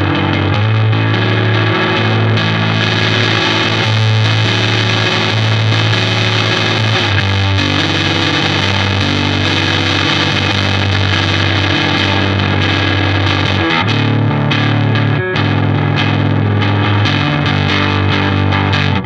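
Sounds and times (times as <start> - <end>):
overdriven electric guitar chords: 0.0 - 19.0.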